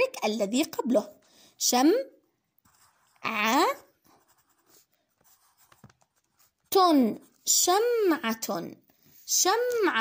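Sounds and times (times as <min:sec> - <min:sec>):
pencil scratching on paper: 0:02.6 - 0:08.1.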